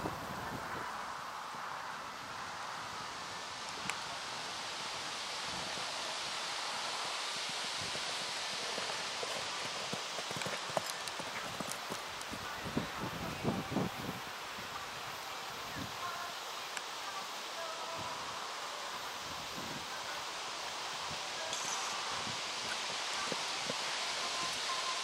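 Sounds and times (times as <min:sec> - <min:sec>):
outdoor hiss: 0:00.0 - 0:25.0
horse hoofbeats on sand: 0:07.8 - 0:13.0.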